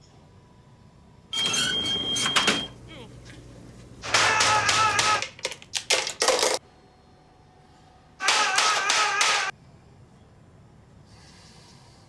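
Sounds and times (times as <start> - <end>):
man crying out: 4.0 - 5.3, 8.2 - 9.5.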